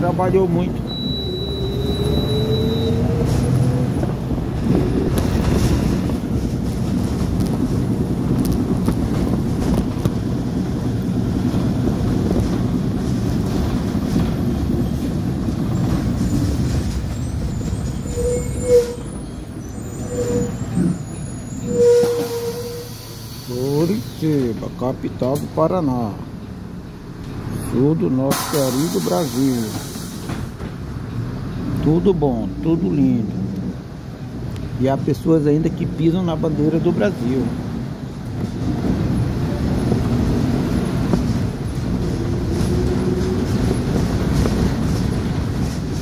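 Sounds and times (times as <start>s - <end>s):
bus engine rough noise: 0.0s - 46.0s
brake squeals: 0.7s - 3.9s, 15.7s - 24.8s, 27.5s - 30.4s.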